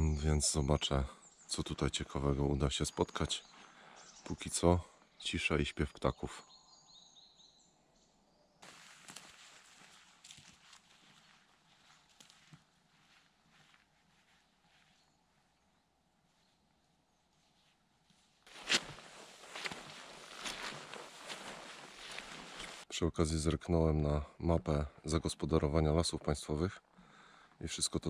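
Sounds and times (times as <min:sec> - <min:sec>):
footsteps on forest floor: 0:08.6 - 0:15.7, 0:16.4 - 0:22.9.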